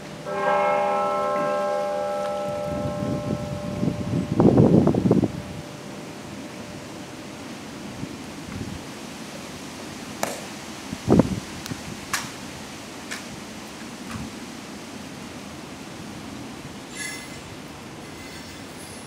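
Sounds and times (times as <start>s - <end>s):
bell ringing: 0.3s - 5.7s.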